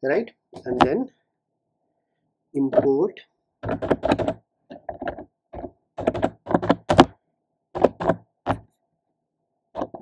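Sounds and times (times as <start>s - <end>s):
typing on computer keyboard: 3.6s - 7.1s, 7.7s - 8.7s.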